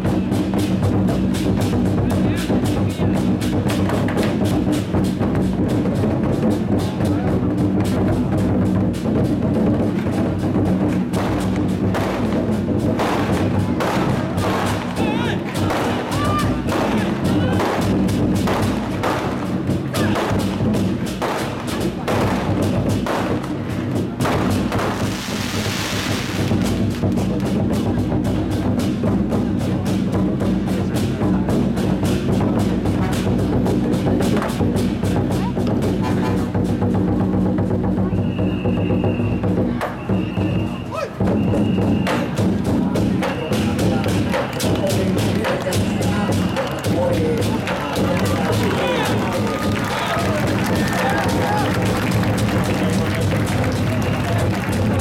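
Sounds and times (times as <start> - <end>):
large drums beaten rapidly: 0.0 - 55.0.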